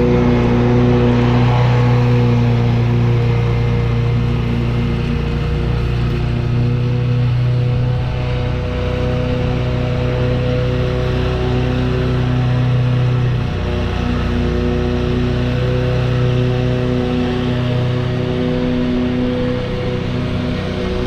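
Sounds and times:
mower engine running: 0.0s - 21.0s.

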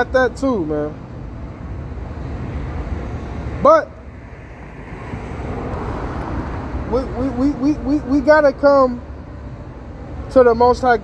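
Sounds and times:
rumble of passing vehicles: 0.0s - 11.0s.

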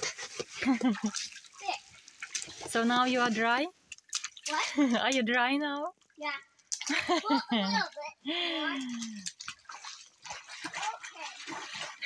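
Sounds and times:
water splashing around legs: 0.0s - 12.0s.

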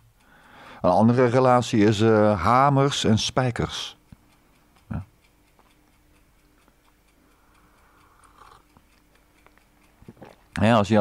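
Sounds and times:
faint regular ticking: 0.0s - 11.0s.

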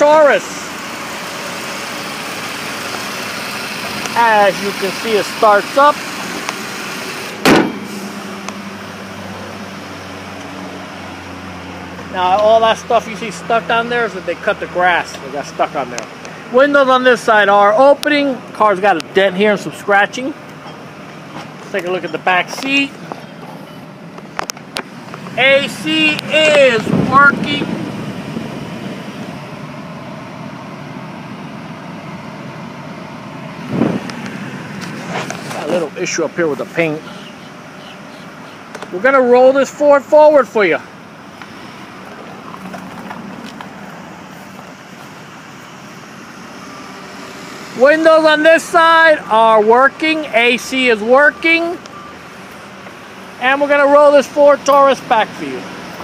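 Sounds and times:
car engine idling: 0.0s - 56.0s
air-conditioning blower rushing: 0.4s - 12.2s, 24.9s - 35.8s
loud thump: 7.4s - 8.0s.

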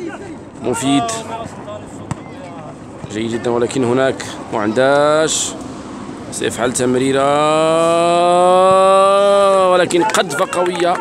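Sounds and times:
man's voice: 0.0s - 2.0s, 6.4s - 11.0s
steady background noise: 0.0s - 11.0s.

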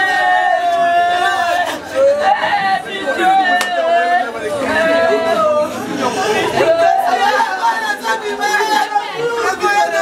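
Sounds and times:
overlapping voices calling out: 0.0s - 10.0s.

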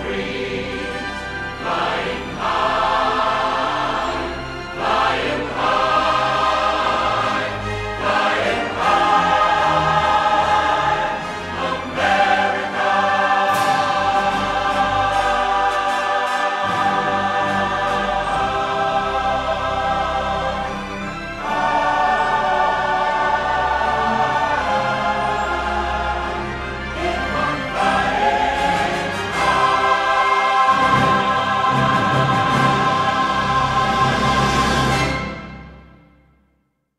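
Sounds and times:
choir singing held chords: 0.0s - 36.1s
orchestral accompaniment: 0.0s - 36.4s.

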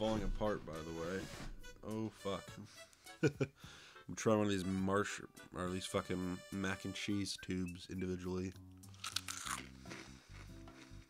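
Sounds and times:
background music: 0.0s - 11.0s
cereal crunching: 8.8s - 11.0s.

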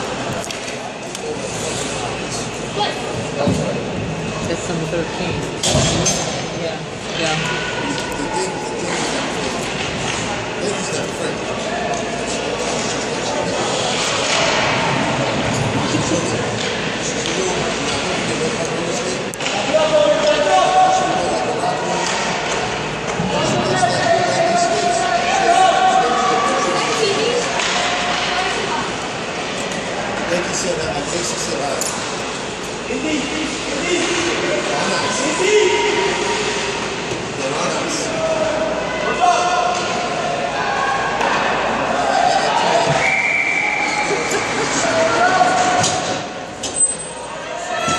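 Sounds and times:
hockey sticks clacking on ice: 27.4s - 28.3s.

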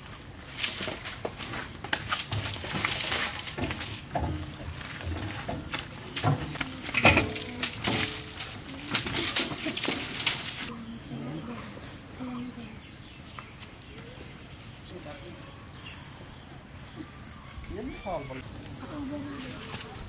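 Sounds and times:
firewood knocks and rustles: 0.4s - 10.7s
children's voices: 6.4s - 9.7s, 18.8s - 20.0s.

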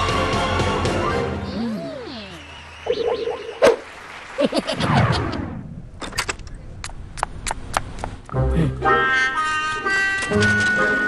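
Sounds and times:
pitch-bending cartoon vocal sounds: 0.9s - 3.8s.

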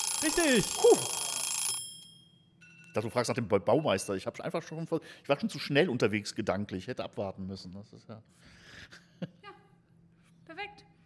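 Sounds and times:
timer alarm ringing: 0.0s - 4.3s.

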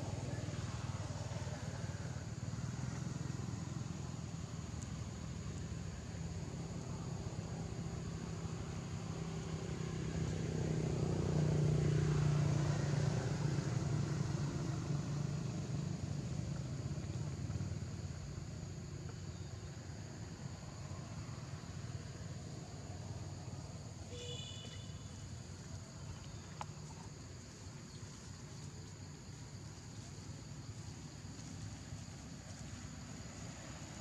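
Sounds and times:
motor vehicle engine drone: 0.0s - 34.0s.

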